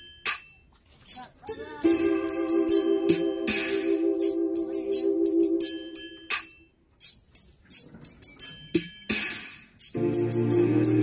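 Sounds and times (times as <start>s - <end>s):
keyboard chords: 1.5s - 6.6s, 10.0s - 11.0s
cymbal crash: 1.9s - 6.4s
drum hits: 1.9s - 6.5s
bass: 9.9s - 11.0s.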